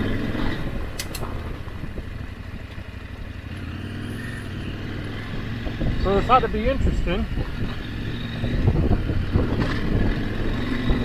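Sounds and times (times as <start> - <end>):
gravel road noise: 0.0 - 11.0
motorcycle engine running: 0.0 - 11.0
sharp clicks: 1.0 - 1.3.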